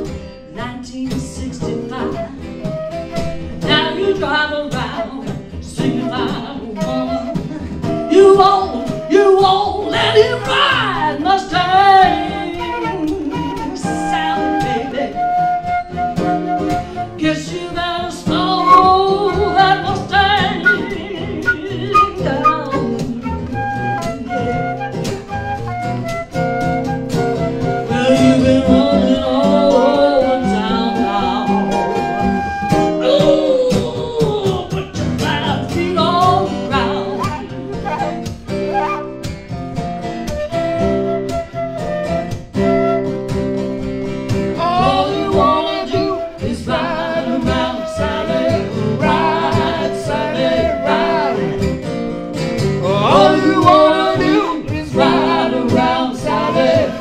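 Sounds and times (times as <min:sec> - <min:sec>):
woman singing blues: 0:00.0 - 0:39.0, 0:44.5 - 0:51.9, 0:52.8 - 0:57.0
acoustic guitars: 0:00.0 - 0:57.0
harmonica playing: 0:18.6 - 0:33.0, 0:37.2 - 0:39.2.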